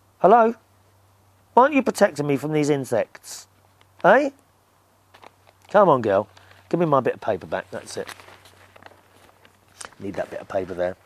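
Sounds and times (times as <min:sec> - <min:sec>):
paper rustling: 0:05.1 - 0:11.0.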